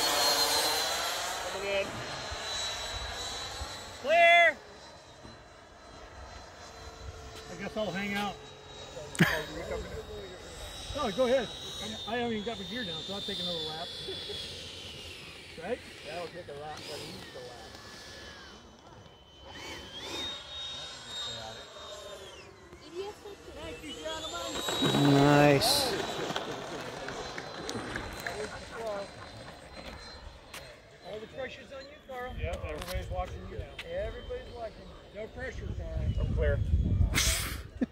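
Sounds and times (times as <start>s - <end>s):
model jets whining overhead: 0.0s - 37.9s.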